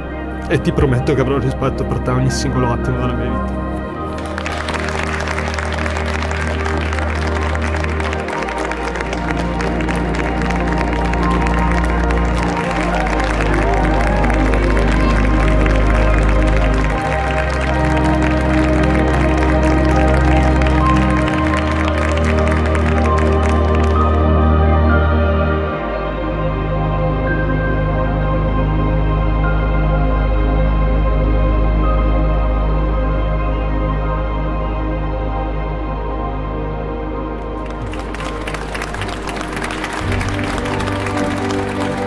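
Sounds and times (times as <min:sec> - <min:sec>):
sustained bass notes music: 0:00.0 - 0:42.0
crowd applauding: 0:00.4 - 0:24.9, 0:37.4 - 0:42.0.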